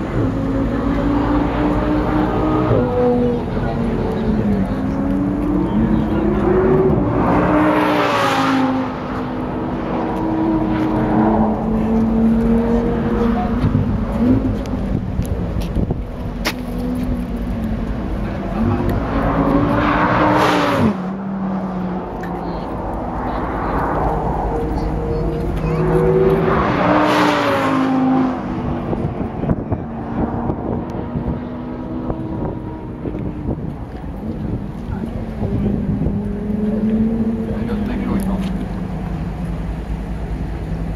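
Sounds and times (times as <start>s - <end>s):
sports car engines revving: 0.0s - 40.9s.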